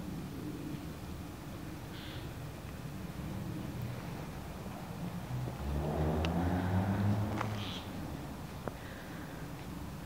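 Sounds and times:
motor vehicle engine hum: 0.8s - 10.0s.

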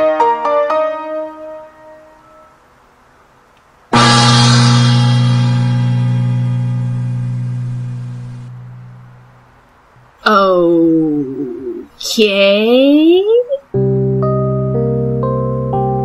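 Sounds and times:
gong ringing: 4.0s - 9.2s.

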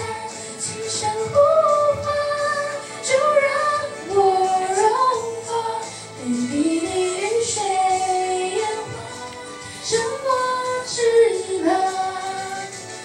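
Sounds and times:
girl singing pop ballad: 0.0s - 13.0s.

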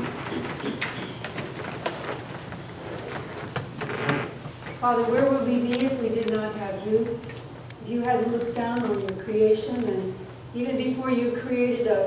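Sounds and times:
congregation rising from pews: 0.0s - 6.6s
wooden pews creaking: 0.0s - 10.2s.

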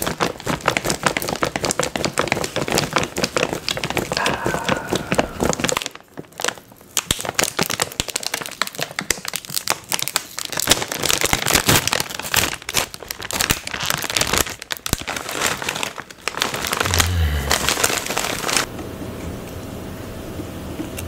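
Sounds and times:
foil chip bag crinkling: 0.0s - 18.7s.

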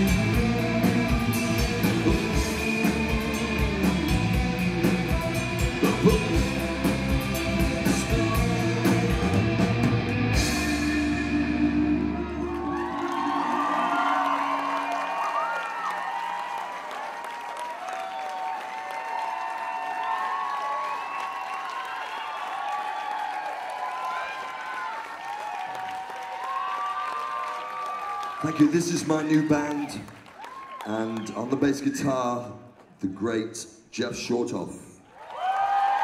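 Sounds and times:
rock band playing: 0.0s - 14.9s
audience cheering and applauding: 0.0s - 33.0s, 35.0s - 36.0s.

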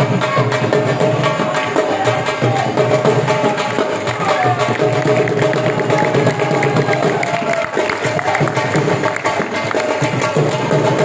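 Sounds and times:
dhol drum beating: 0.0s - 11.0s.

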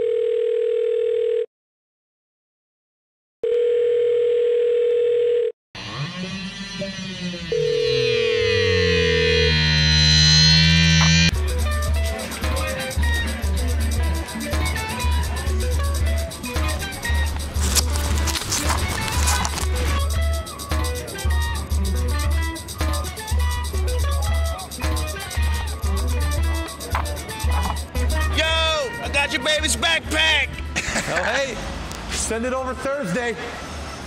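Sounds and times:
steady telephone tone: 0.0s - 1.5s, 3.4s - 5.6s, 7.5s - 10.9s
music with steady beat: 9.6s - 30.8s.

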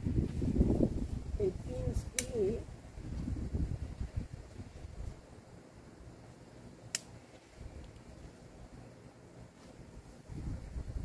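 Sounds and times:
pruning shears snipping: 2.1s - 2.6s.

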